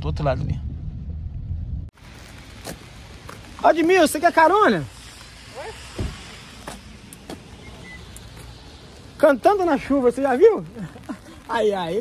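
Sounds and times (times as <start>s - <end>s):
rain hissing: 1.9s - 12.0s
car door shutting: 6.0s - 6.2s.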